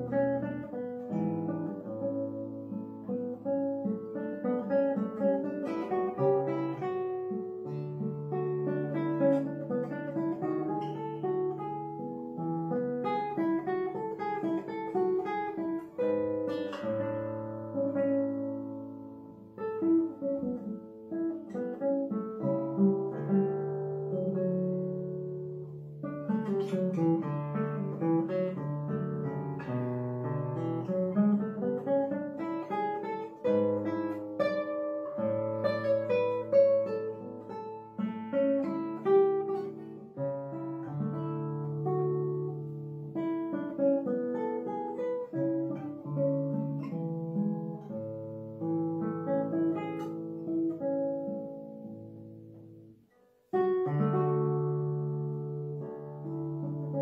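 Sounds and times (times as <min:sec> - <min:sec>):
classical guitar fingerstyle: 0:00.0 - 0:57.0.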